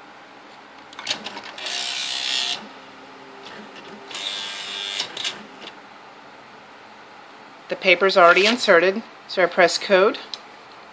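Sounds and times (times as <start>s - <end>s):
typewriter clicks: 1.0s - 1.8s
typewriter motor running: 1.0s - 2.7s, 3.4s - 5.7s.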